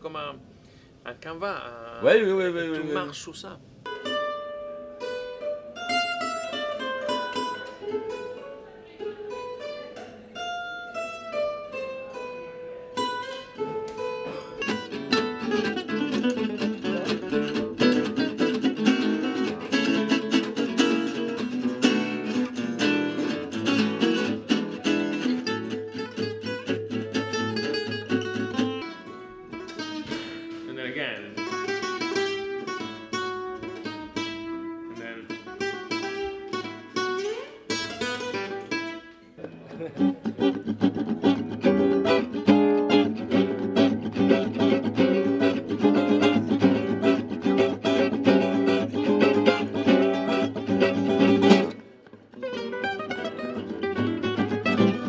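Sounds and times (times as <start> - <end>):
acoustic jazz guitars playing: 1.8 - 55.0.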